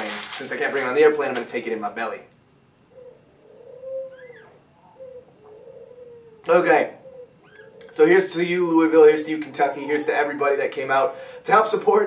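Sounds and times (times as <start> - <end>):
cockatoo chirp: 2.9 - 8.0
cockatoo murmuring calls: 2.9 - 8.0.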